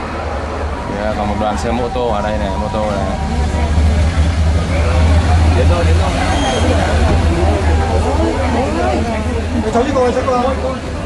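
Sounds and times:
motorcycle engines rumbling: 0.0 - 11.0
people talking: 0.8 - 11.0.

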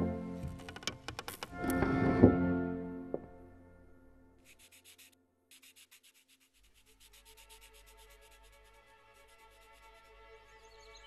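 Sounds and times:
pen scratching on paper: 4.4 - 10.1.

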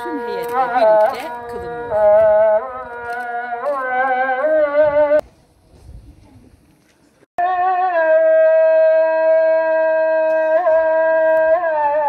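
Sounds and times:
person chanting prayer: 7.6 - 12.0.

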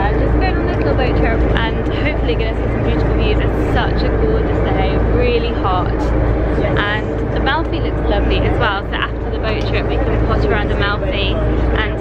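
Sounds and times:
boat engine droning: 0.0 - 12.0
people's voices: 0.0 - 12.0.

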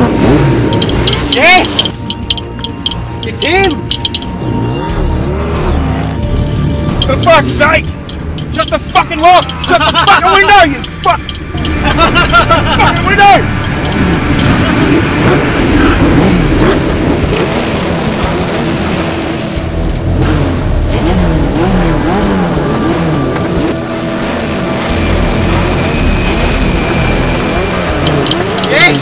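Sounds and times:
motorcycle engines revving: 0.0 - 29.0.

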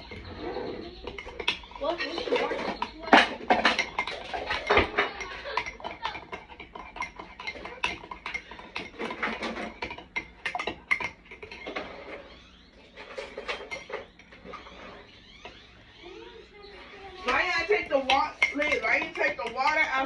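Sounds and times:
spoon stirring in ceramic mug: 0.0 - 20.0.

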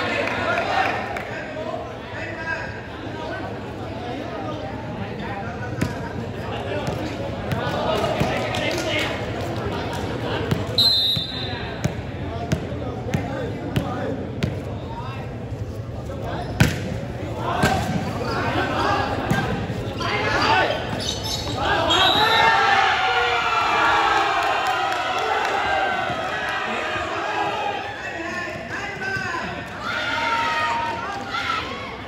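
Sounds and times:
crowd and player voices: 0.0 - 32.0.

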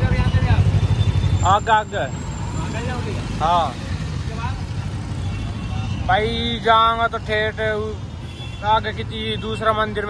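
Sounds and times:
street traffic rumble: 0.0 - 10.0
voices calling: 0.0 - 10.0.

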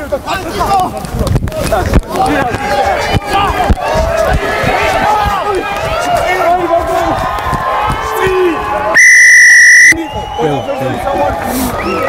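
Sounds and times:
light crowd noise: 0.0 - 12.0
referee's whistle blast: 9.0 - 10.0.

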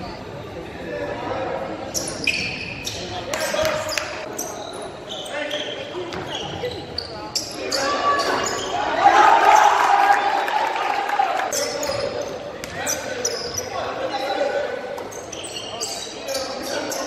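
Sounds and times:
sneaker squeaks: 1.8 - 9.7, 11.5 - 17.0.

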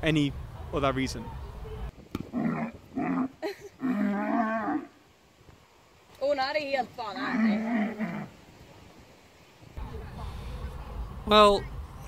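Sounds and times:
cow grunting and mooing: 2.3 - 4.9.

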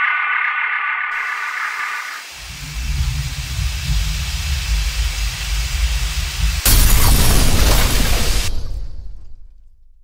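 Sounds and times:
deep rumble with hiss: 2.3 - 6.7.

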